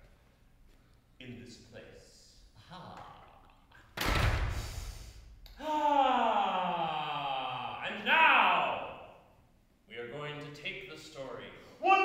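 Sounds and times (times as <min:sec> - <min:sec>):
man's wordless vocal exclamation: 0:05.6 - 0:09.1, 0:11.6 - 0:12.0.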